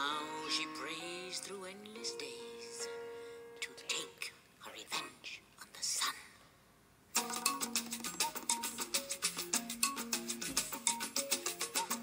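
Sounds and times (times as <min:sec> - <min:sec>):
person whispering vocal: 0:03.6 - 0:06.4.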